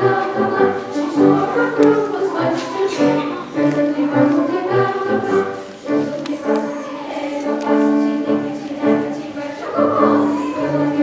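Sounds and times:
girls' choir singing: 0.0s - 11.0s
piano accompaniment: 0.0s - 11.0s.

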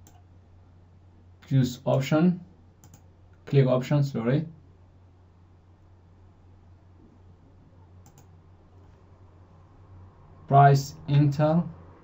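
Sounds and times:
faint low hum: 0.0s - 12.0s
computer mouse button clicks: 2.8s - 3.0s, 8.0s - 8.3s.

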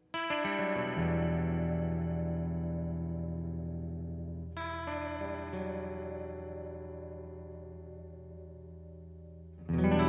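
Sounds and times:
clean electric guitar with flanger: 0.0s - 10.0s.

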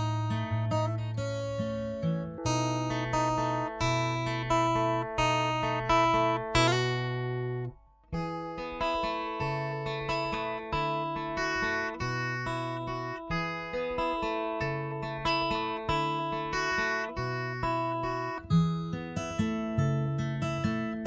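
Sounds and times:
acoustic guitar picked pattern: 0.0s - 21.0s.

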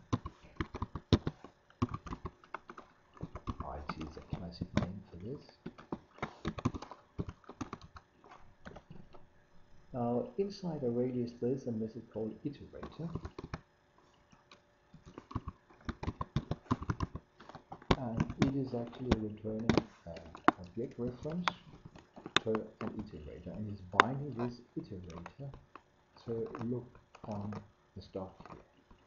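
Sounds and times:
keyboard keys clicking: 0.0s - 8.0s, 14.3s - 29.0s.

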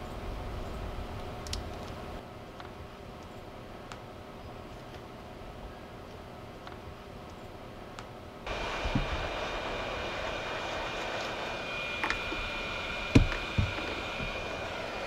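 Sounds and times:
heat gun fan whining: 7.9s - 15.0s.

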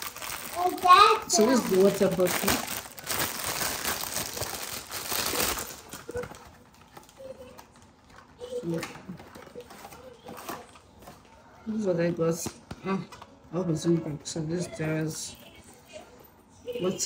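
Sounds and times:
plastic bag crinkling: 0.0s - 10.8s.

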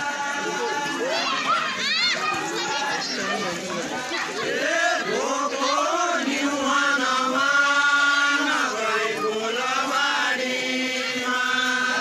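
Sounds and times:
person chanting a song: 4.4s - 12.0s.

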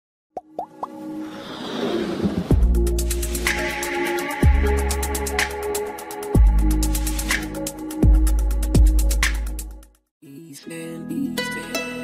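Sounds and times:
quick rising pops: 0.4s - 2.6s.

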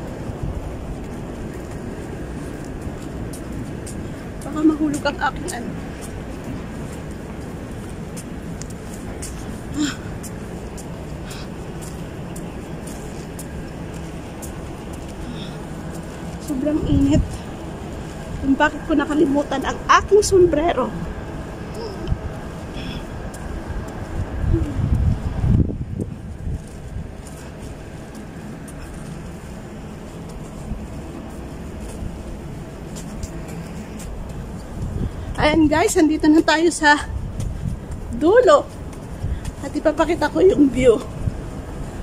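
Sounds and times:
wind rumbling on microphone: 0.0s - 42.0s.

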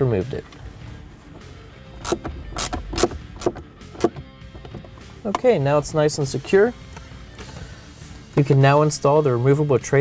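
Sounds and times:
quiet background music: 0.0s - 10.0s
screw driving clicks: 2.0s - 5.4s.

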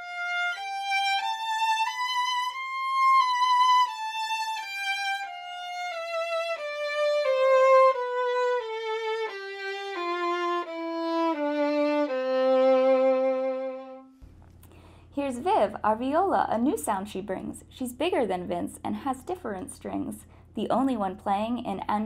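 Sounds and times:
solo violin playing slow notes: 0.0s - 14.2s.

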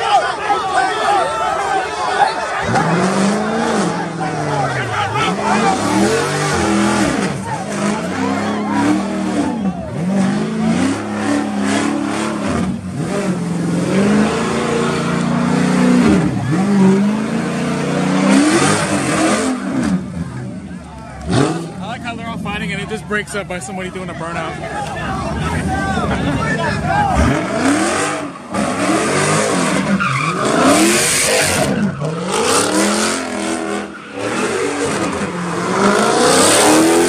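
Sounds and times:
car engine revving: 2.4s - 37.0s.

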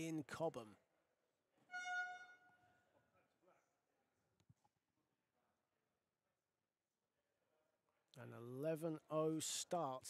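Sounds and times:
high ringing note: 1.7s - 2.6s.

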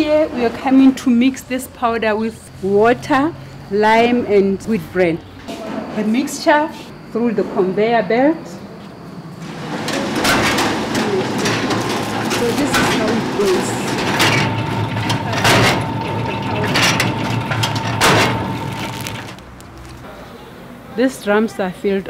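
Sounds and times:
machinery humming: 0.0s - 20.9s
steady machine whine: 7.7s - 19.8s
sharp machine knocks: 9.7s - 18.8s.

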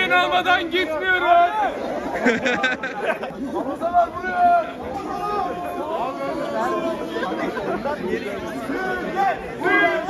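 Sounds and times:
students chattering: 0.0s - 10.0s
people shouting: 3.8s - 7.2s, 8.6s - 10.0s.

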